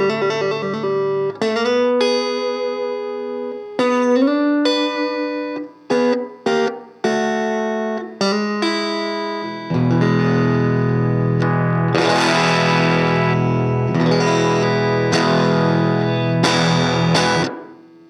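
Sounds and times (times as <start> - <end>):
electric guitar chords: 0.0 - 18.0.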